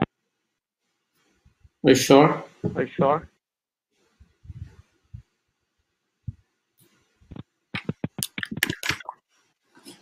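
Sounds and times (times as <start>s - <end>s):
soft rustle: 3.9s - 5.4s
earphone microphone scrapes and clicks: 4.0s - 5.3s, 6.2s - 9.2s.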